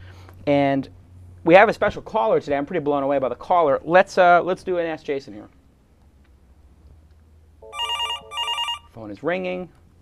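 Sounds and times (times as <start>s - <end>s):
electronic telephone ringtone: 7.6s - 9.0s.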